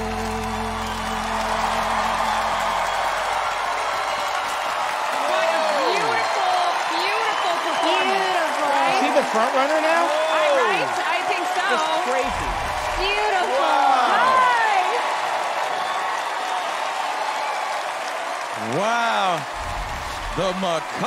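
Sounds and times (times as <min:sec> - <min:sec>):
audience applauding and cheering: 0:00.0 - 0:21.0
loud whoops and shouts: 0:00.0 - 0:21.0.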